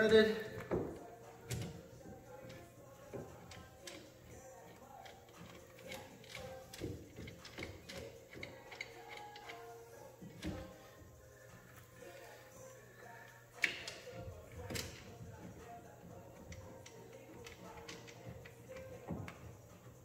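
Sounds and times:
faint background music: 0:00.0 - 0:20.0.

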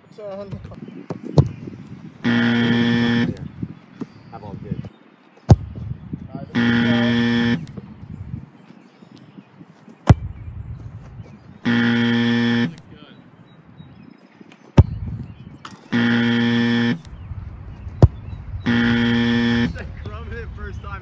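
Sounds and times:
sharp thuds: 0:00.6 - 0:01.6, 0:05.5 - 0:06.0, 0:10.0 - 0:12.9, 0:14.7 - 0:17.1, 0:17.8 - 0:19.8
low harsh buzzer: 0:02.2 - 0:03.6, 0:06.4 - 0:07.7, 0:11.7 - 0:12.8, 0:15.9 - 0:17.1, 0:18.6 - 0:20.0.

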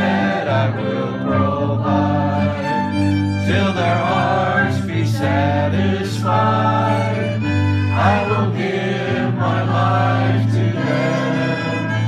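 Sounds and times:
violin accompaniment: 0:00.0 - 0:12.0
voices singing together: 0:00.0 - 0:12.0.

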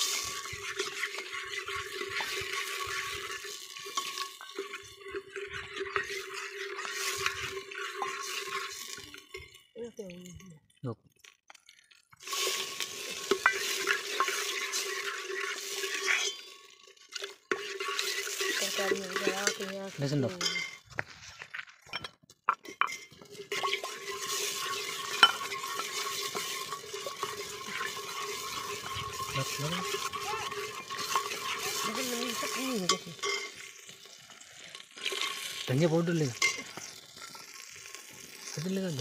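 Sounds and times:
metal ladle stirring: 0:00.0 - 0:09.9, 0:12.2 - 0:20.9, 0:22.0 - 0:39.0
food frying hiss: 0:00.0 - 0:10.4, 0:12.1 - 0:21.0, 0:23.1 - 0:39.0
hot oil sizzling in a pot: 0:00.0 - 0:10.9, 0:11.6 - 0:21.0, 0:22.5 - 0:39.0.

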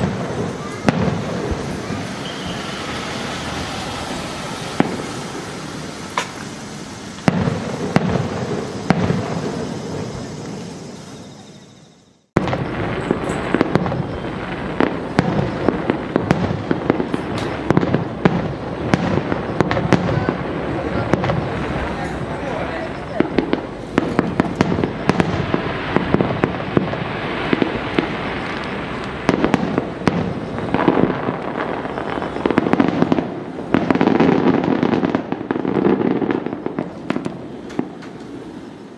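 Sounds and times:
fireworks crackling: 0:00.0 - 0:38.9
sharp firework reports: 0:00.0 - 0:38.9.

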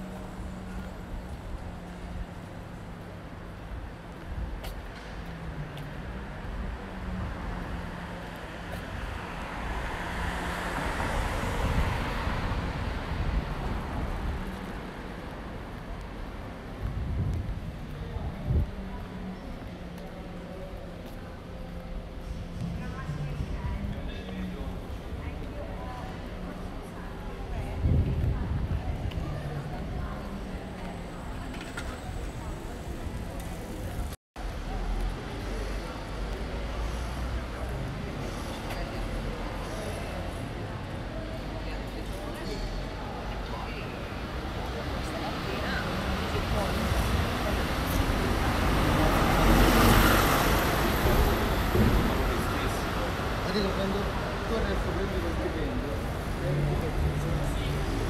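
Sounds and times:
low rumble of city noise: 0:00.0 - 0:58.0
passers-by talking: 0:00.0 - 0:58.0.

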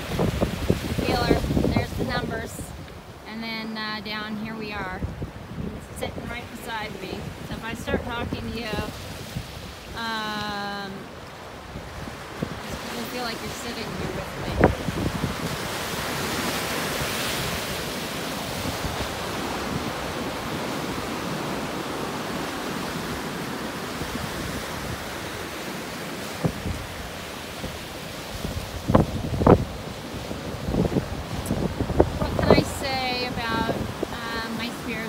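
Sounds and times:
surf washing among rocks: 0:00.0 - 0:35.0.

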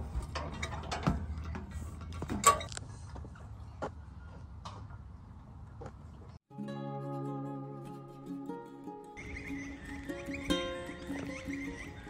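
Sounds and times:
metal stepping pods creaking and knocking: 0:00.0 - 0:02.8.

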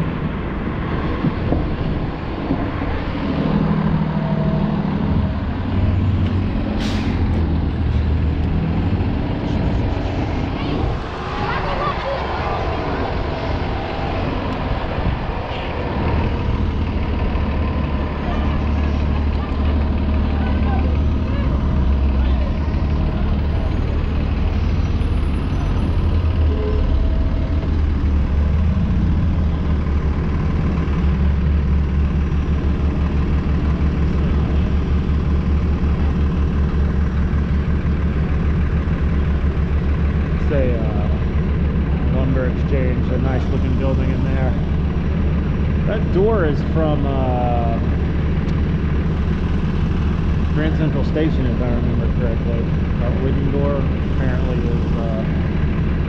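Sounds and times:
bus running in traffic: 0:00.0 - 0:56.0.

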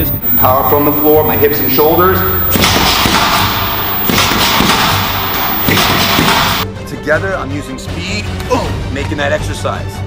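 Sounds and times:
punches thudding into punching bag: 0:02.5 - 0:06.6.

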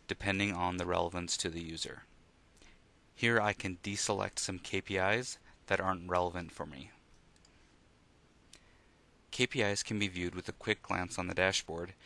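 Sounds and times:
computer mouse click: 0:07.1 - 0:07.6.

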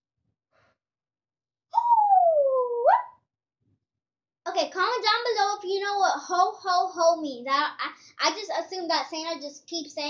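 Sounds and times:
child's wordless vocal call: 0:04.5 - 0:10.0.

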